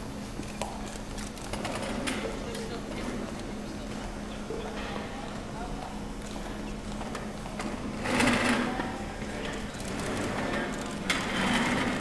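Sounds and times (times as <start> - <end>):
indistinct conversation in hall: 0.6 - 12.0.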